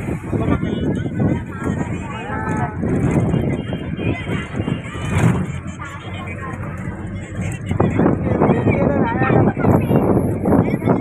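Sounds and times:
vehicle engine and road noise: 0.0s - 11.0s
voices: 0.0s - 11.0s.

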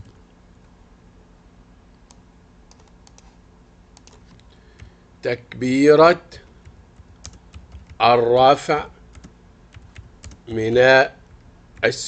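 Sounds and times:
faint steady hum: 0.0s - 12.0s
computer keyboard keystrokes: 2.1s - 3.3s, 4.0s - 4.9s, 6.6s - 8.0s, 9.1s - 10.4s.

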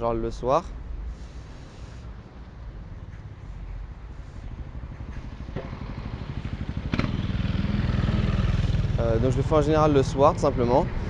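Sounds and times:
motor scooter engine running: 5.2s - 9.0s.

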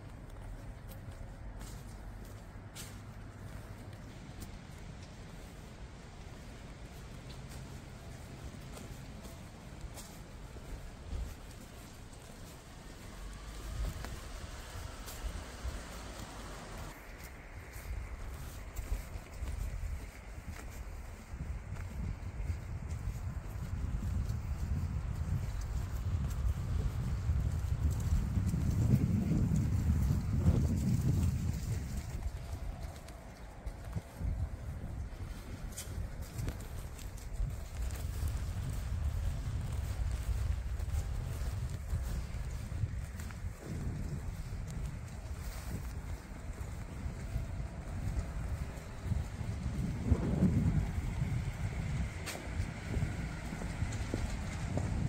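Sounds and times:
footsteps on paving: 0.0s - 55.0s
wind on microphone: 3.5s - 55.0s.

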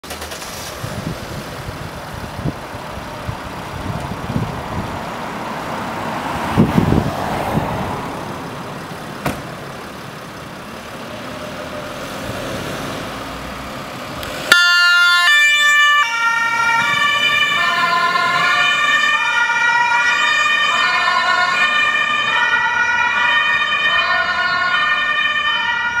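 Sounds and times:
ambulance engine running: 0.0s - 26.0s
two-tone siren: 14.5s - 26.0s.

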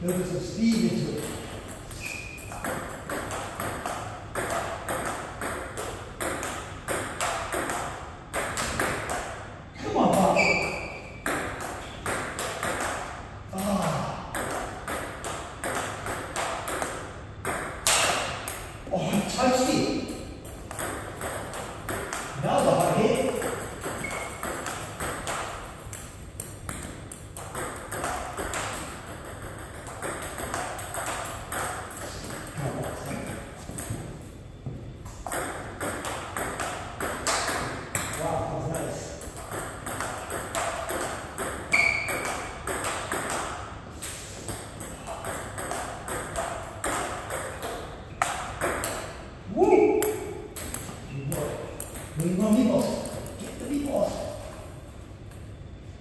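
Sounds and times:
table tennis ball clicking: 20.5s - 32.4s.

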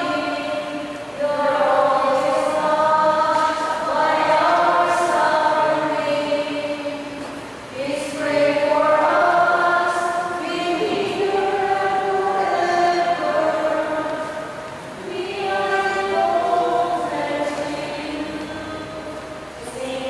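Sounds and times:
group singing a hymn: 0.0s - 20.0s.

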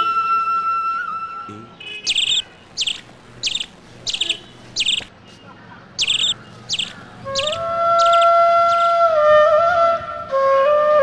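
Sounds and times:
bird calling with trill: 2.0s - 5.1s, 6.0s - 8.8s.

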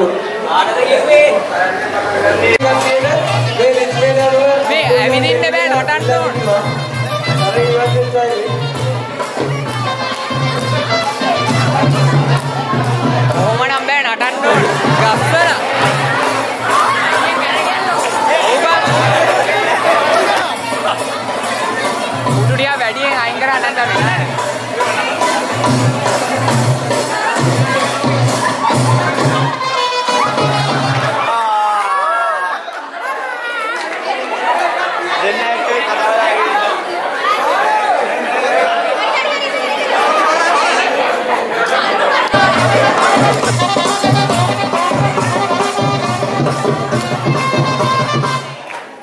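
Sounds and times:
crowd talking and calling out: 0.0s - 49.0s
music playing: 1.4s - 31.3s, 41.7s - 48.8s.

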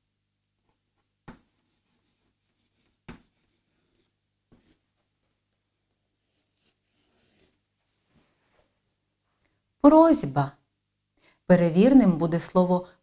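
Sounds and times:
chalk scratching on blackboard: 1.3s - 4.8s, 6.2s - 7.6s
chalk tapping on blackboard: 1.3s - 4.8s.

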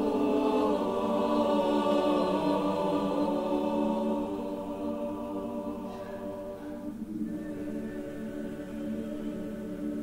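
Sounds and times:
church choir singing: 0.0s - 10.0s.

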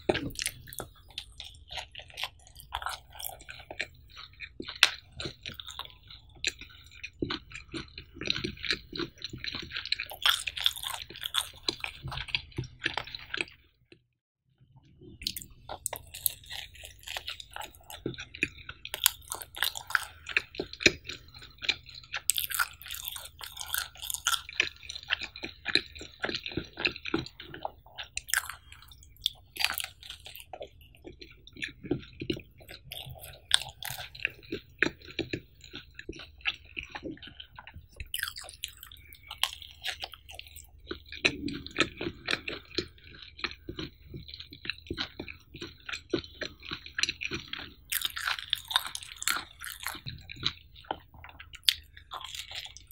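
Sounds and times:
chewing pizza close up: 0.0s - 14.0s, 15.0s - 52.9s.

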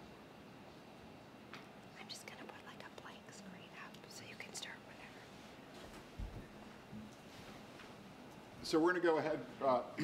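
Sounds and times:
person whispering: 2.0s - 5.2s.

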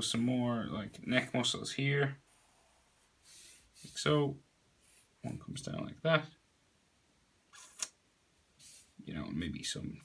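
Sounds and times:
soft hiss: 0.0s - 10.0s.

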